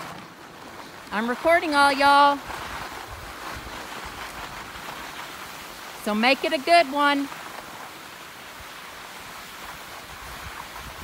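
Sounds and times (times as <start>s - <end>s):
skis sliding over snow: 0.0s - 11.0s
wind buffeting microphone: 1.0s - 6.0s, 9.7s - 11.0s.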